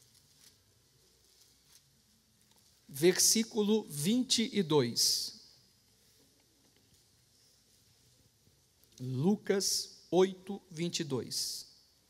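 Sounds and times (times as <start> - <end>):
faint rustles: 0.0 - 2.9, 5.6 - 9.0.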